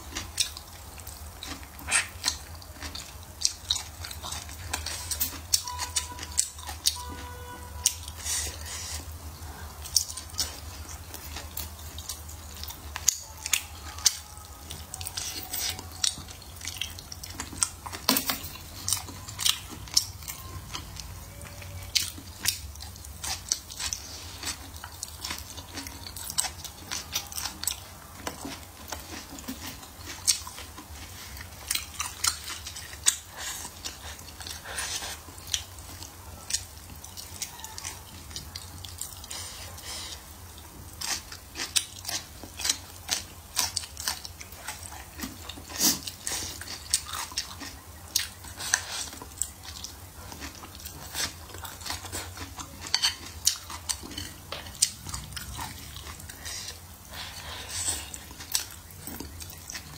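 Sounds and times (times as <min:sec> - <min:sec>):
faint low hum: 0:00.0 - 0:59.9
person chewing food: 0:00.0 - 0:59.9.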